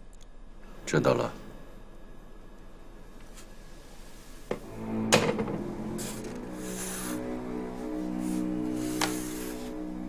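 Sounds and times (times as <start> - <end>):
music with low held notes: 4.5 - 10.0.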